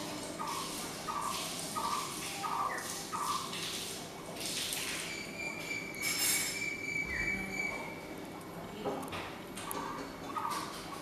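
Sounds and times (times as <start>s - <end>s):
bird trilling whistle: 5.1s - 8.0s.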